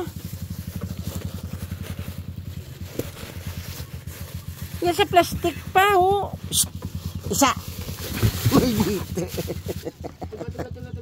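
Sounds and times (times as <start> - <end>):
small engine puttering: 0.0 - 11.0.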